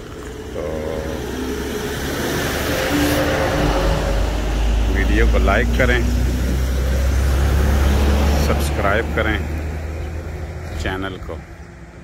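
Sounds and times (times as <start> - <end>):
vehicle approaching on road: 0.0 - 12.0.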